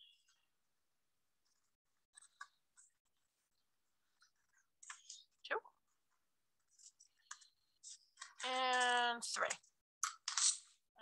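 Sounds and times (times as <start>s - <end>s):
scissors cutting paper: 10.0s - 10.7s.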